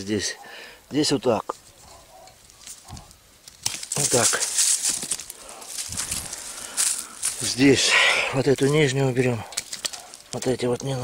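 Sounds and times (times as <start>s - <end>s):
twigs and dry leaves rustling: 0.9s - 11.0s
secateurs clicking: 9.4s - 11.0s.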